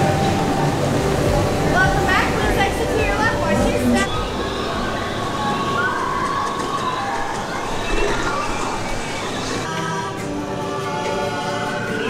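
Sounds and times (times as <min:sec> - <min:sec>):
faint high gliding tones: 0:00.0 - 0:09.7
dense wash of noise: 0:00.0 - 0:10.6.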